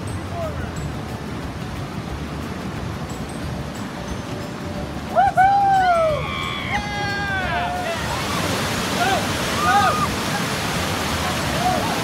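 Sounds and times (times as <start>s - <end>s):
rushing whitewater: 0.0s - 12.0s
people whooping and shouting: 5.1s - 10.6s, 11.2s - 12.0s.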